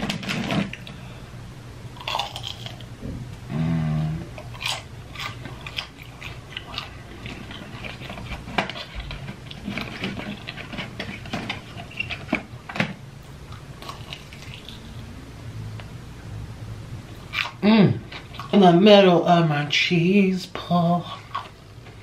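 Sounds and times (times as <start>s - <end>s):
person chewing crunchy food: 2.0s - 15.1s, 17.1s - 18.6s, 21.0s - 22.0s.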